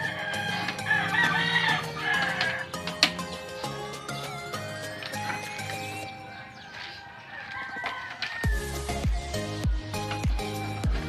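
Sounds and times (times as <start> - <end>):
rooster crowing: 0.0 - 3.3, 6.1 - 9.7
background music: 0.0 - 11.0.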